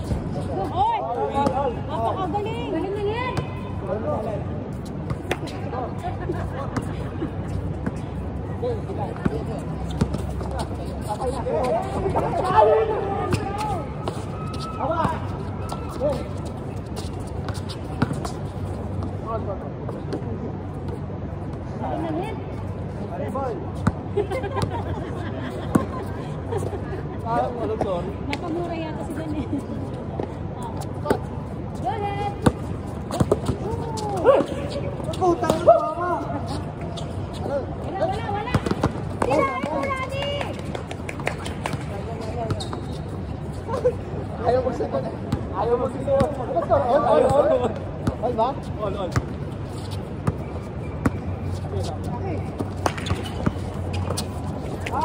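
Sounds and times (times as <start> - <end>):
basketball bouncing on hard court: 38.4 - 39.4.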